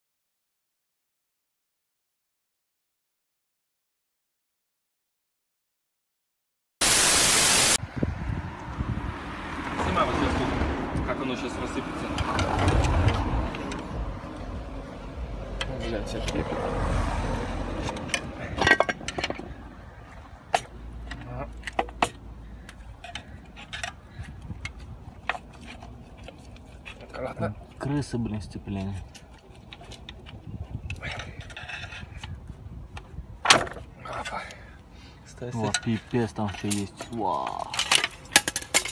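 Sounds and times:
hand tools clattering: 17.9s - 19.6s, 35.4s - 38.9s.

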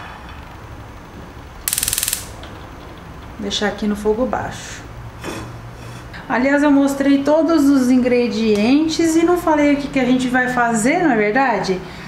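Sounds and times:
gas stove igniter clicking: 1.7s - 2.4s.

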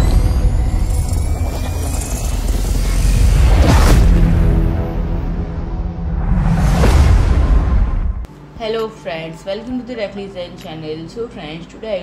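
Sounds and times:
deep low rumble: 0.0s - 8.3s.

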